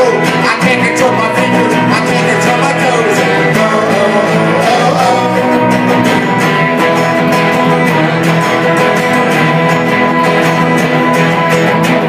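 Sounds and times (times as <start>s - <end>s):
band playing punk rock: 0.0s - 12.0s.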